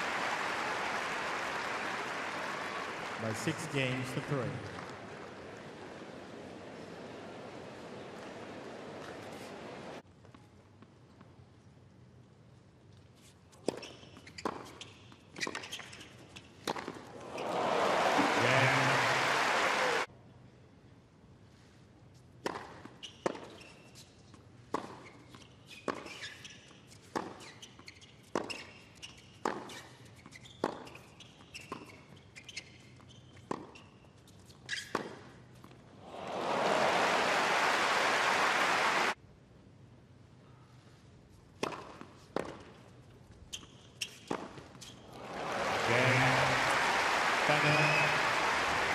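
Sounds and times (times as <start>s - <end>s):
crowd applause and cheering: 0.0s - 6.0s, 17.2s - 20.1s, 36.0s - 39.2s, 45.1s - 48.9s
racquets striking tennis ball: 41.6s - 42.9s.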